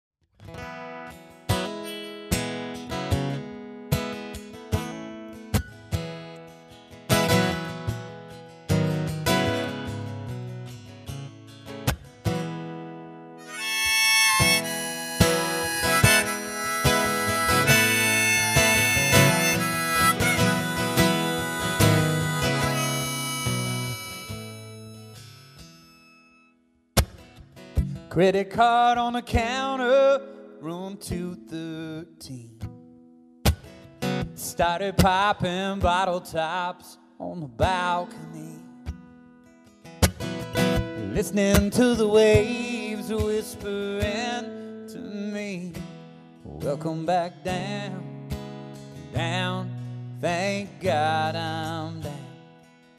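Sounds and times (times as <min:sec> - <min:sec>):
acoustic guitar strumming chords: 0:00.4 - 0:52.9
harmonica melody: 0:13.4 - 0:26.6.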